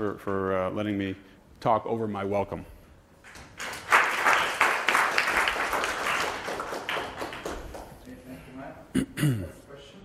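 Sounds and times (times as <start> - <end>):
audience applauding: 3.3 - 8.0.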